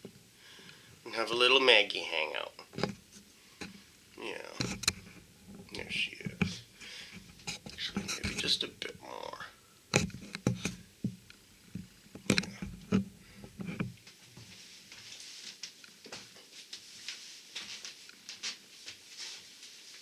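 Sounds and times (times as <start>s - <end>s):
faint rustling: 2.6s - 20.0s
handling noise on microphone: 2.7s - 3.9s, 4.5s - 8.9s, 9.9s - 20.0s.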